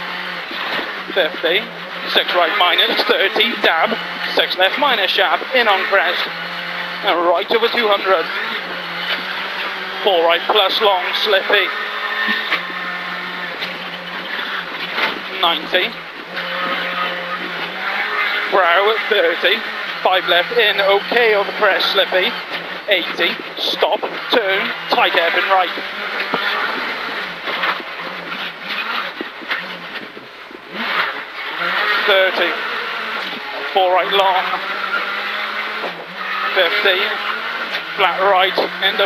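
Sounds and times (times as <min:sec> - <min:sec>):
rally car engine running: 0:00.0 - 0:39.0
tyres on gravel: 0:00.0 - 0:39.0.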